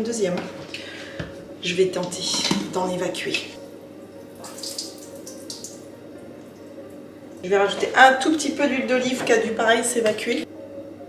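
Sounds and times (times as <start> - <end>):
liquid splashing: 4.2 - 5.9
wine trickling into a sink: 4.2 - 7.4.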